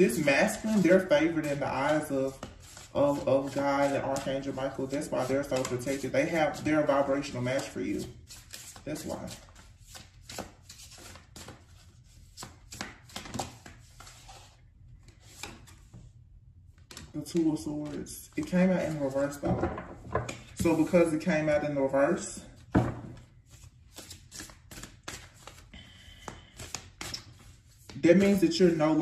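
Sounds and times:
cards being shuffled: 0.0s - 16.0s, 16.8s - 19.5s, 22.6s - 28.7s.

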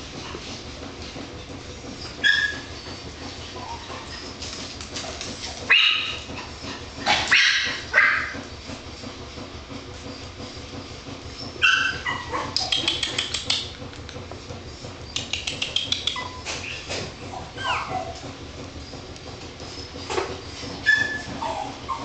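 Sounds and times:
small dogs yipping and barking: 2.0s - 4.6s, 5.6s - 8.5s, 11.4s - 13.6s, 15.1s - 19.0s, 19.6s - 22.0s
rapid sharp clicks: 12.5s - 16.2s.

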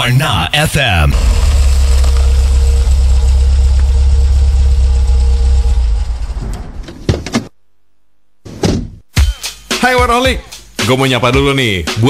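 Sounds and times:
engine idling: 1.1s - 6.8s.

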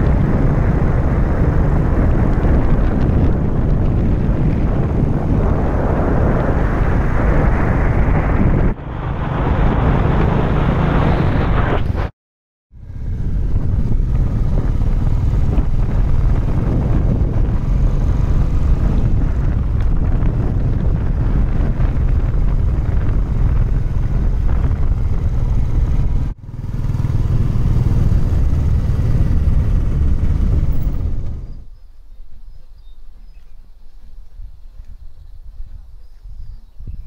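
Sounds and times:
motorcycle engine running: 12.8s - 31.7s.

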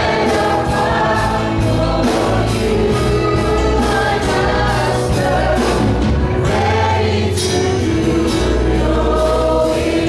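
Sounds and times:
congregation singing worship song: 0.0s - 10.0s
musical accompaniment low notes: 0.0s - 10.0s.

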